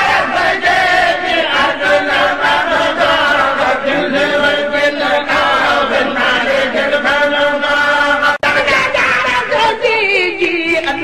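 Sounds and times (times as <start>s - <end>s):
voices chanting in slow melody: 0.0s - 8.4s.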